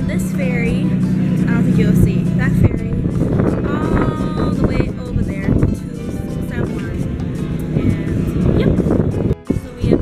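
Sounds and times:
low engine hum: 0.0 - 10.0
voices: 0.0 - 10.0.

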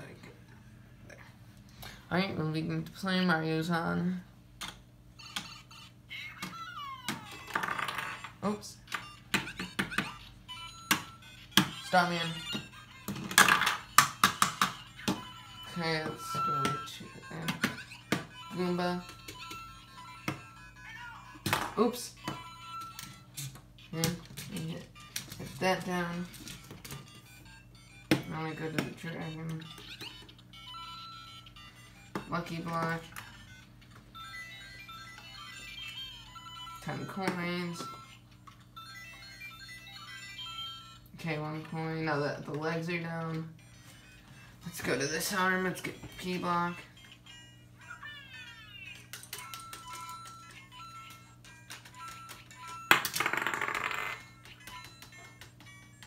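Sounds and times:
electronic game beeps and jingles: 14.7 - 20.9, 24.6 - 38.2.

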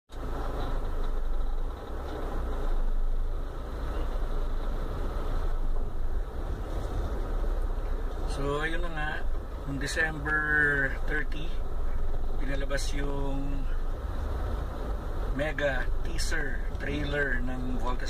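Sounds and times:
car engine idling: 0.1 - 18.0.

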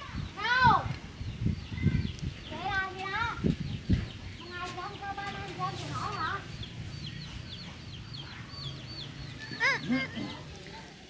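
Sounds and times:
wavering animal calls: 9.4 - 10.5.

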